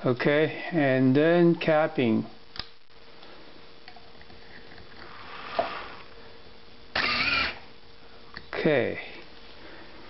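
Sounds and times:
small electric motor humming: 0:07.0 - 0:07.6.

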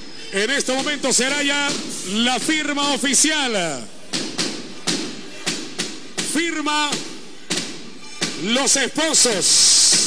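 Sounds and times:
firecrackers banging in a hall: 0:00.3 - 0:10.0.

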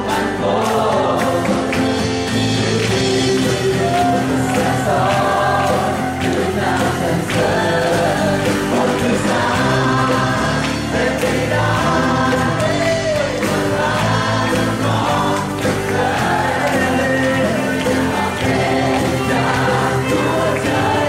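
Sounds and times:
acoustic guitar: 0:00.0 - 0:21.0
man singing into microphone: 0:00.0 - 0:21.0
steady bass: 0:00.0 - 0:21.0
voices singing along: 0:00.0 - 0:21.0.

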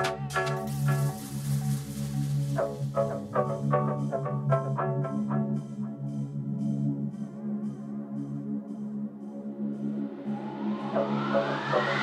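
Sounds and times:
deep house music: 0:00.0 - 0:12.0
rising noise sweep: 0:09.4 - 0:12.0.

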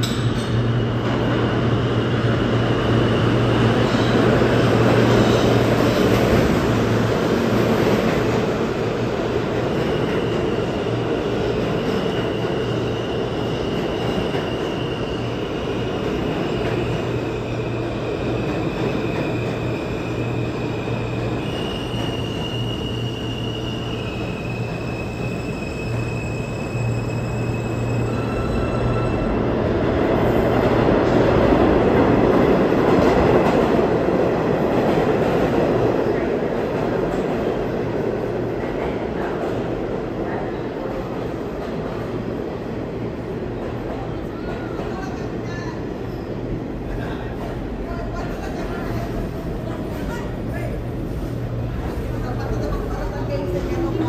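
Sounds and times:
subway train wheels rumbling: 0:00.0 - 0:54.0.

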